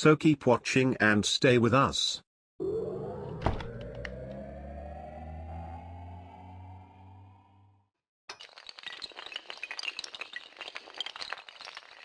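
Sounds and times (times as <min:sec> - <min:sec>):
low droning hum with rising tone: 0:02.6 - 0:07.9.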